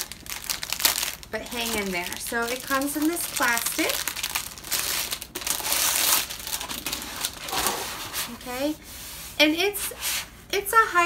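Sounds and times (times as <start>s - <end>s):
plastic wrapping crinkling: 0.0s - 8.6s.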